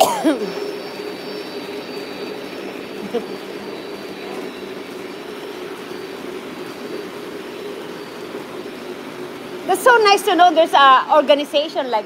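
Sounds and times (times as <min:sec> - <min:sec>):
model train motor and wheels humming: 0:00.0 - 0:12.0.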